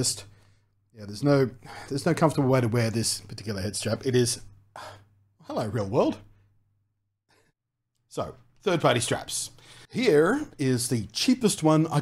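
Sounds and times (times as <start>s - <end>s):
man speaking: 0.9s - 4.6s, 5.4s - 6.3s, 8.1s - 12.0s
breathy sigh: 4.8s - 5.2s.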